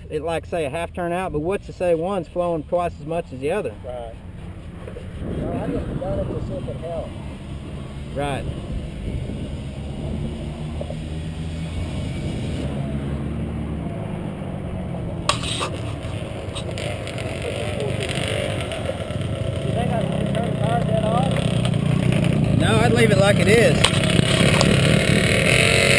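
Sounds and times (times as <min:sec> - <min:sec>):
engine idling: 0:14.6 - 0:25.6
sharp knock: 0:15.3 - 0:15.8.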